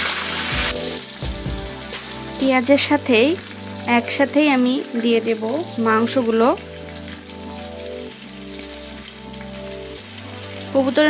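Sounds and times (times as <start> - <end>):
background music: 0.0 - 11.0
onions sizzling in oil: 0.0 - 11.0.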